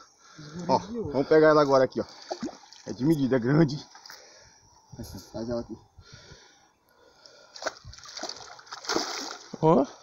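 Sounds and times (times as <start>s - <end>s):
fish splashing at water surface: 7.6s - 9.5s.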